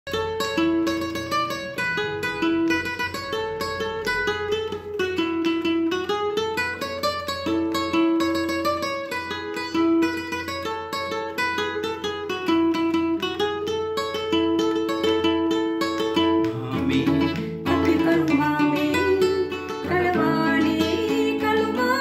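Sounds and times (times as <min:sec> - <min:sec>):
classical guitar fingerstyle: 0:00.1 - 0:22.0.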